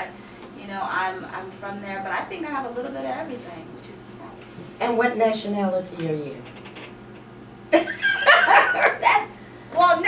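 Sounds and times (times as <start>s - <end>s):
woman laughing loudly: 7.8s - 9.1s.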